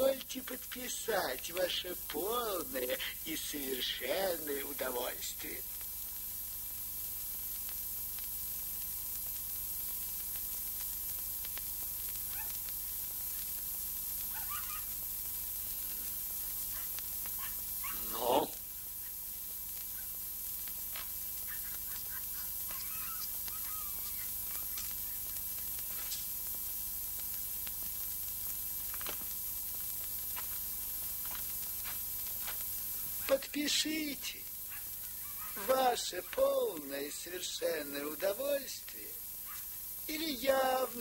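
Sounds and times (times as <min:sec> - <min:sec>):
faint scratchy sounds: 0:00.0 - 0:41.0
old film soundtrack hiss and hum: 0:00.0 - 0:41.0.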